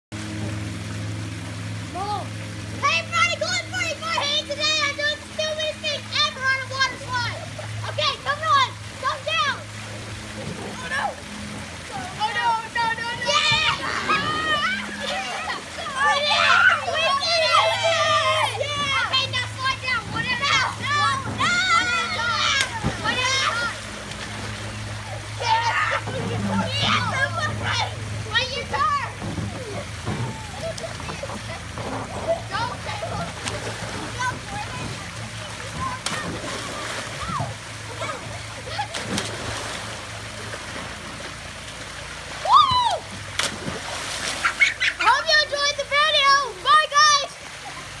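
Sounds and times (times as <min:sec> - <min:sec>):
splashing water: 0:00.1 - 0:48.0
splash into pool: 0:06.2 - 0:27.9, 0:28.8 - 0:45.4
children shrieking and yelling: 0:12.0 - 0:24.0, 0:24.8 - 0:33.5, 0:34.1 - 0:39.3, 0:42.4 - 0:43.2, 0:44.4 - 0:47.8.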